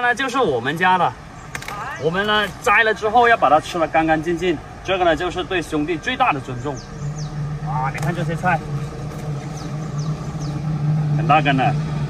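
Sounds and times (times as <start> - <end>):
motor humming: 1.1 - 12.0.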